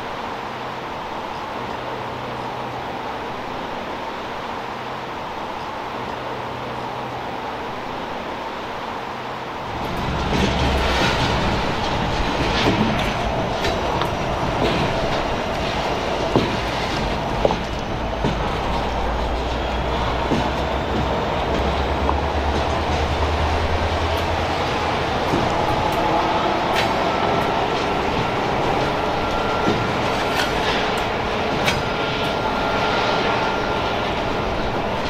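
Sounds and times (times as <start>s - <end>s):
freight train rumbling past: 0.0s - 35.0s
train wheel clicks and clanks: 9.6s - 35.0s.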